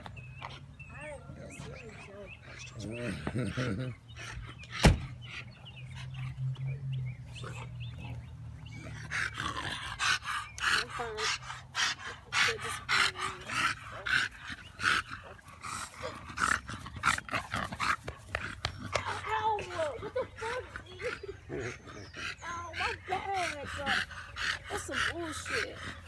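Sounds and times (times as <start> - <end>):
dog panting: 0.0 - 26.0.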